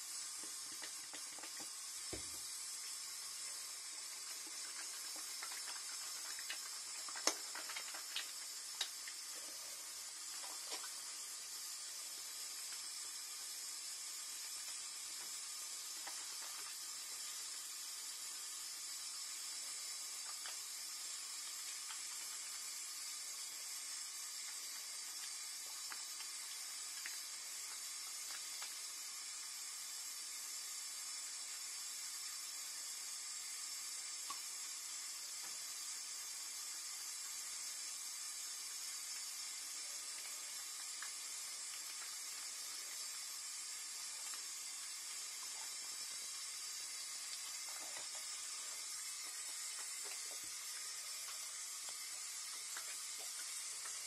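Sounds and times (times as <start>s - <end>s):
faucet running into sink: 0.0s - 54.0s.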